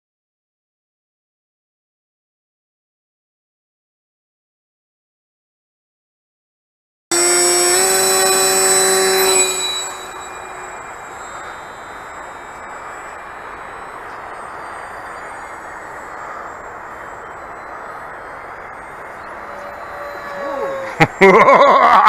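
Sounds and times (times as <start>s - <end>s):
electric motor and propeller whine: 7.1s - 22.0s.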